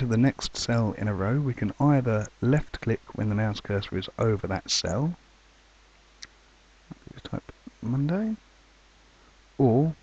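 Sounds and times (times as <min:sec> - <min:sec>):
faint recording hiss: 0:00.0 - 0:10.0.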